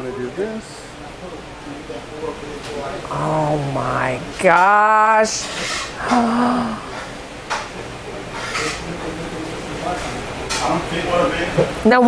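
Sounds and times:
low room hum: 0:00.0 - 0:12.0
woman gasping: 0:06.0 - 0:07.0.

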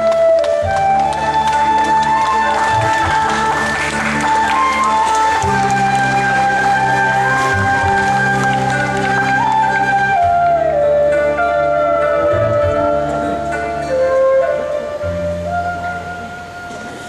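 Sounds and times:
instrumental stage music: 0:00.0 - 0:17.0.

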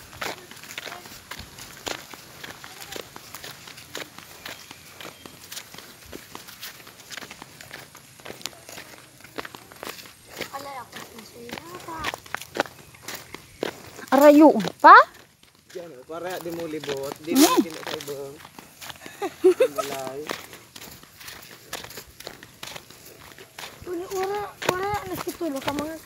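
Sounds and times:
footsteps on grass and dirt: 0:00.0 - 0:26.0.

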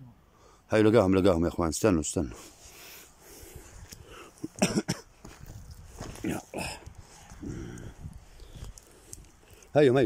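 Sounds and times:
man coughing: 0:04.4 - 0:05.1
man clearing throat: 0:04.5 - 0:05.1.

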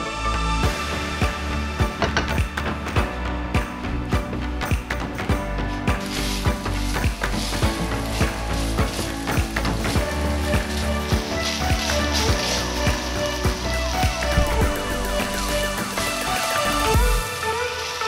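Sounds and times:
background music with steady beat: 0:00.0 - 0:18.0
steak sizzling in a frying pan: 0:05.6 - 0:18.0
wooden spatula stirring: 0:05.9 - 0:15.8.

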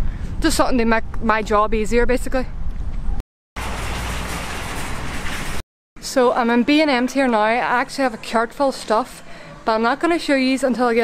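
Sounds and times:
street ambience hiss and rumble: 0:00.0 - 0:11.0.

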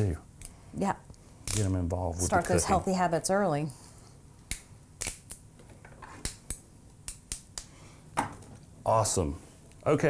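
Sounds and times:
asparagus spears snapping: 0:01.4 - 0:01.7, 0:04.5 - 0:05.4.

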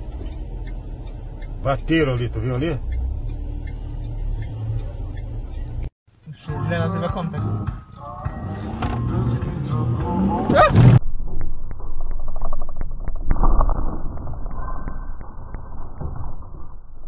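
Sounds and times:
muffled road noise: 0:00.0 - 0:14.0.

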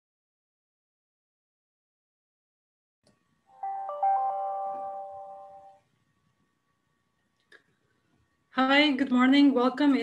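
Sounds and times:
bell-like electronic chime: 0:03.6 - 0:05.8.

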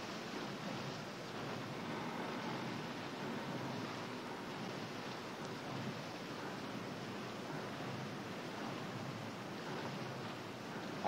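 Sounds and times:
wind and sea hiss aboard ship: 0:00.0 - 0:11.0.

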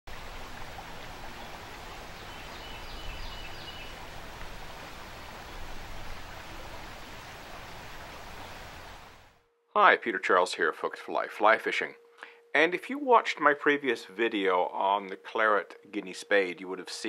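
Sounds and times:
river water rushing over rapids: 0:00.1 - 0:09.3.

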